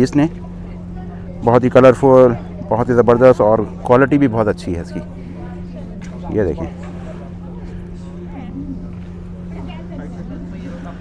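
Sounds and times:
indistinct background voices: 0.0s - 11.0s
steady low hum: 0.0s - 11.0s.

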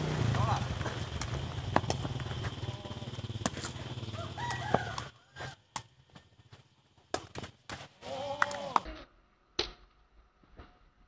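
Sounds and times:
ball being kicked: 1.2s - 2.6s
rooster crowing: 3.9s - 5.7s.

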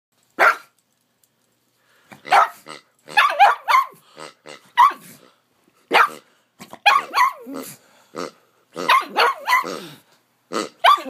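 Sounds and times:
dog barking: 0.4s - 0.7s, 2.2s - 4.0s, 4.8s - 5.1s, 5.9s - 6.2s, 6.8s - 7.5s, 8.8s - 9.8s, 10.8s - 11.0s.

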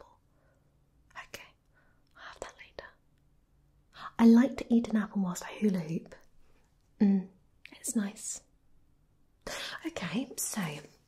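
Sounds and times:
woman whispering: 1.1s - 3.0s, 7.0s - 8.5s, 9.5s - 11.0s.

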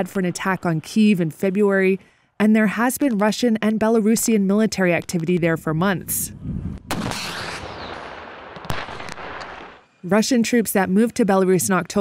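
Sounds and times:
faint gunfire reports: 6.9s - 9.8s
sharp gunshot: 6.9s - 9.8s.

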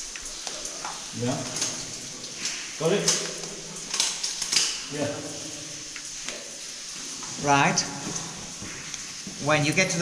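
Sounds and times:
steady hiss: 0.0s - 10.0s
man speaking: 1.2s - 1.5s, 4.9s - 5.4s.

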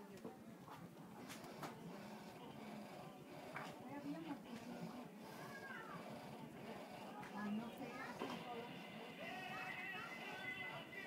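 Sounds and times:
faint store background: 0.0s - 11.0s.

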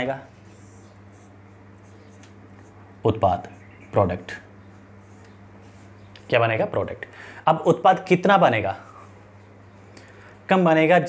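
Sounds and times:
steady low hum: 0.0s - 11.0s
marker pen scratching on whiteboard: 0.4s - 2.8s.

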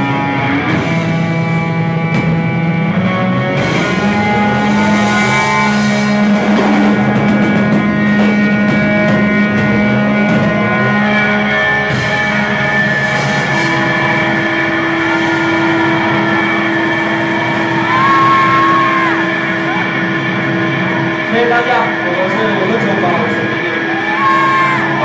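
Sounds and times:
droning electric guitars: 0.0s - 25.0s.

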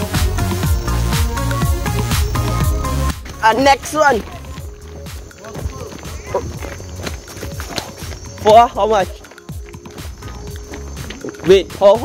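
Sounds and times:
footsteps on dirt trail: 0.6s - 12.0s.

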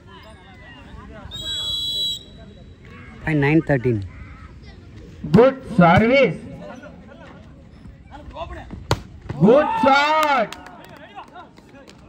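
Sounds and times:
referee's whistle blast: 1.3s - 2.6s.

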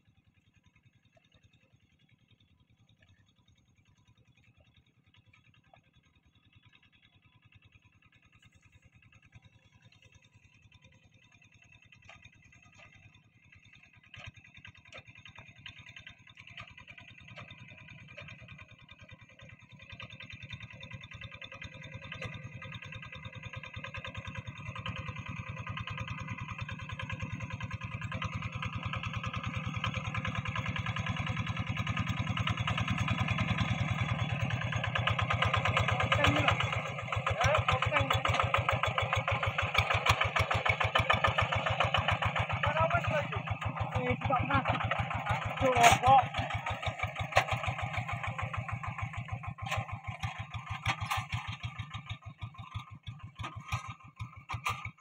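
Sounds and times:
hand tractor diesel engine chugging: 1.1s - 55.0s.

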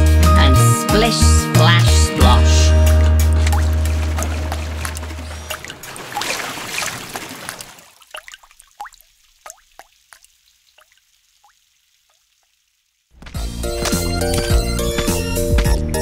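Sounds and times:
cartoon water splashing: 1.8s - 12.5s.

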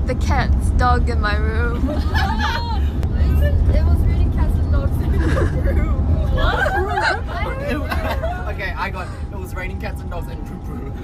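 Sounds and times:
bus engine rumble: 0.0s - 11.0s
group chatter and laughter: 1.5s - 3.8s, 4.6s - 9.5s.

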